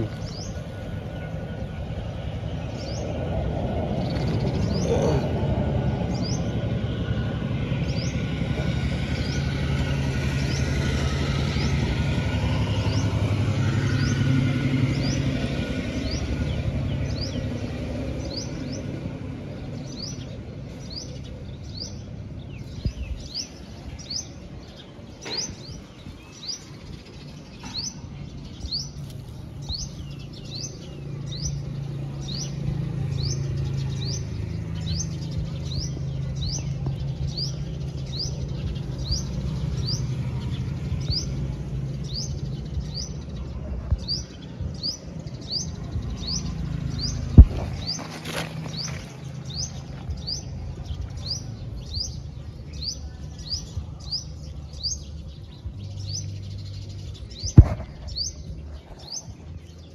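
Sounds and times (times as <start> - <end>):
bird high rising chirp: 0.0 - 59.9.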